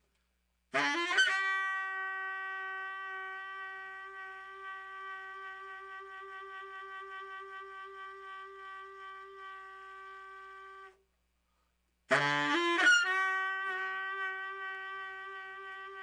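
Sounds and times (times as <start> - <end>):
baritone saxophone long note: 0.8 - 11.0, 12.1 - 16.0.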